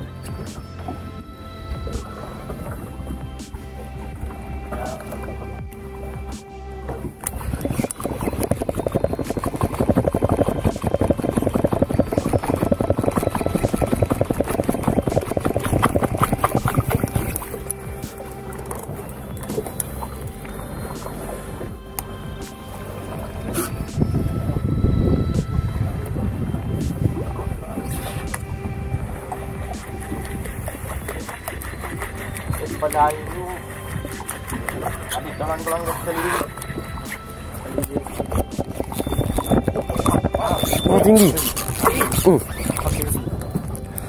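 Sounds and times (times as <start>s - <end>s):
background music: 0.0s - 44.0s
boat engine rumbling: 0.0s - 44.0s
fishing reel ticking: 2.8s - 44.0s.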